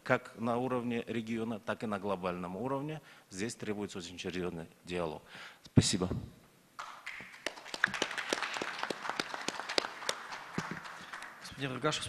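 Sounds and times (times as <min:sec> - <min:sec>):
audience applauding: 0:06.8 - 0:11.9.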